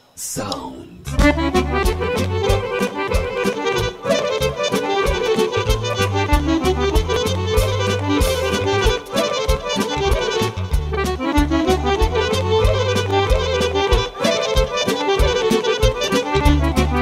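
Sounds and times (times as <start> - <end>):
deep bass notes: 1.0 - 4.0, 5.7 - 9.0, 10.0 - 13.6
steady drum beat: 1.2 - 4.0, 5.0 - 12.3
accordion fast melody: 1.2 - 17.0.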